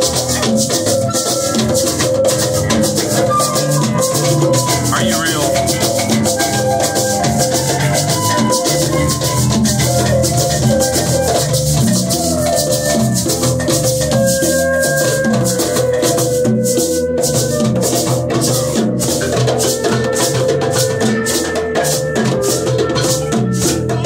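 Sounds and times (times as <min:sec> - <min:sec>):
hand drums: 0:00.0 - 0:24.0
held pitched notes: 0:01.8 - 0:11.4
bass line: 0:02.6 - 0:09.9.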